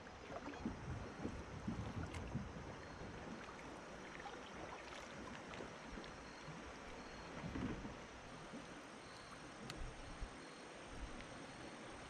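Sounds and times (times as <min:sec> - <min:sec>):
faint hiss of water: 0:00.0 - 0:12.0
light wind: 0:00.0 - 0:12.0.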